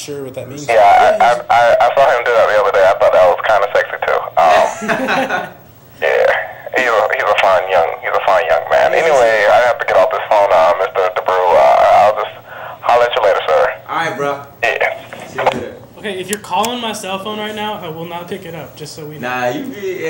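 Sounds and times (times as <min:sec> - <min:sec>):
voices talking: 0:00.0 - 0:20.0.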